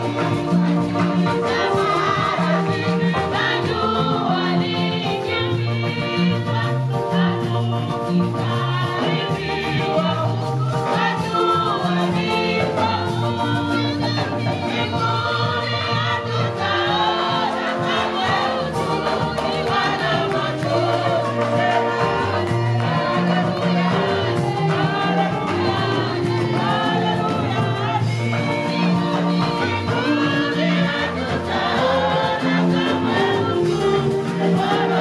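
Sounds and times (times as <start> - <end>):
choir singing gospel song: 0.0 - 35.0
instrumental accompaniment with bass: 0.0 - 35.0.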